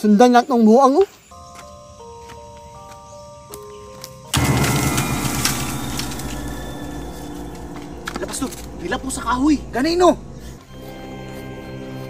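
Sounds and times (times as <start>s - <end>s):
steady music tones: 1.3s - 12.0s
sudden loud burst of noise: 4.4s - 10.6s.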